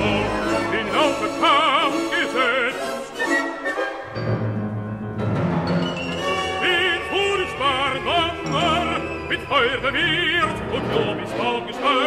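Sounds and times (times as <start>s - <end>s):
baritone voice singing: 0.0s - 3.5s, 6.2s - 12.0s
symphony orchestra playing: 0.0s - 12.0s.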